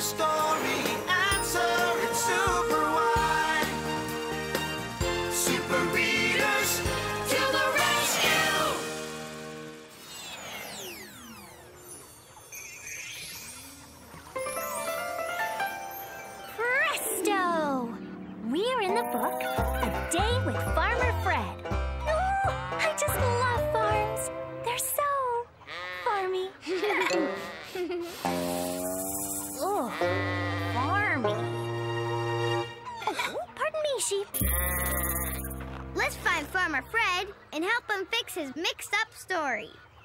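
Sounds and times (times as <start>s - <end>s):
cartoon background music: 0.0s - 25.4s, 28.2s - 37.5s
warbling sparkly trill: 9.9s - 20.0s
cartoon music chord: 14.4s - 21.6s
cartoon sheep bleating: 27.2s - 27.8s, 29.7s - 30.9s.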